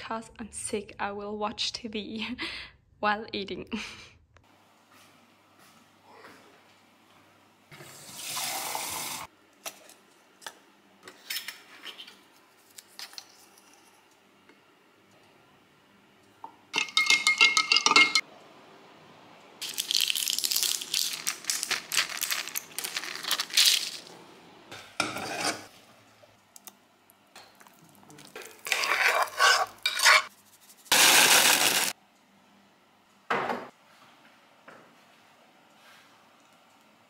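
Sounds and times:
pot and utensils clattering: 16.8 - 18.2
stirring and scraping: 27.6 - 30.9.

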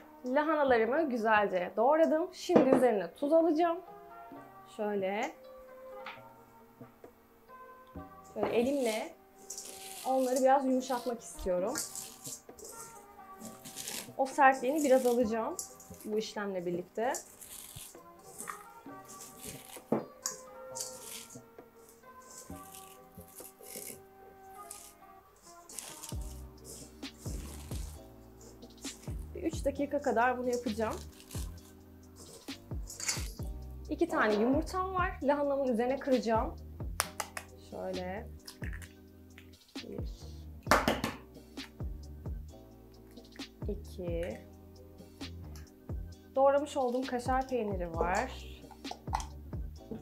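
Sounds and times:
background music with held notes: 0.0 - 50.0
egg cracking on metal bowl: 8.6 - 16.2, 17.0 - 21.4, 22.2 - 28.0, 30.5 - 33.4, 37.0 - 37.5, 38.4 - 39.5, 48.7 - 49.4
cabbage being squeezed by hand: 17.2 - 19.9, 25.6 - 28.0.

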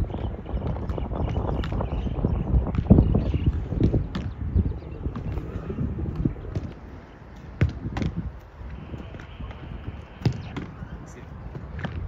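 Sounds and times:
football being kicked: 6.0 - 8.4, 9.0 - 10.9
ball caught in goalkeeper gloves: 7.6 - 8.3, 10.2 - 10.8.

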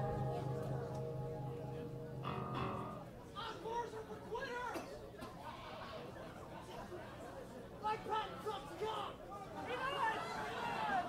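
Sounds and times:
electric guitar chord ringing: 0.0 - 3.7
crowd voices chattering: 0.0 - 11.0.

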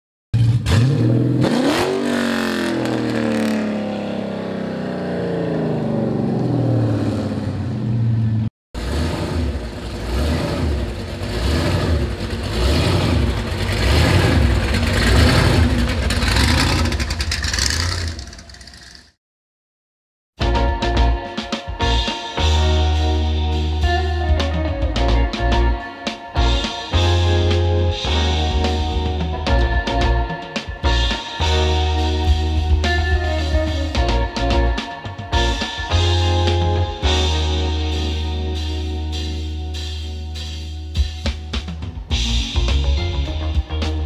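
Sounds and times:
engine revving: 0.4 - 19.2
engine lumpy idle: 9.2 - 19.1.

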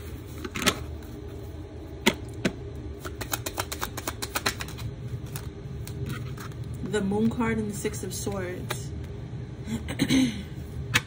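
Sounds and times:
cards snapping: 3.0 - 6.0
cards shuffling clicks: 3.0 - 6.7.

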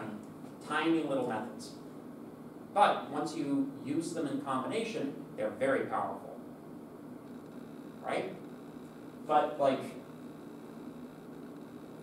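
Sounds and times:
faint steady hiss: 0.0 - 12.0
low hum: 6.4 - 12.0.

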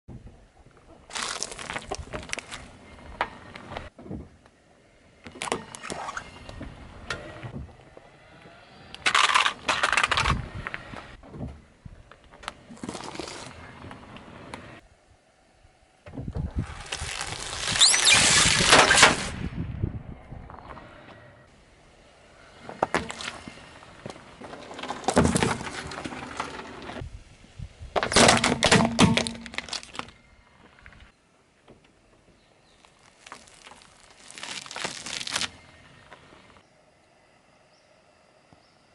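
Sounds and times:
balloons squeaking and bursting: 1.1 - 2.5, 16.6 - 19.3, 32.8 - 35.6.

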